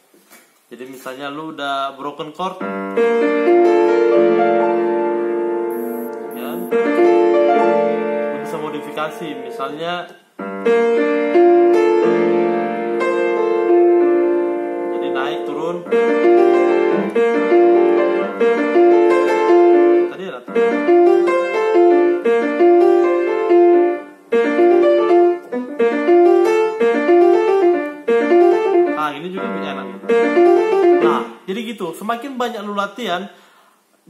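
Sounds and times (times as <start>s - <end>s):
piano playing: 2.6s - 31.6s.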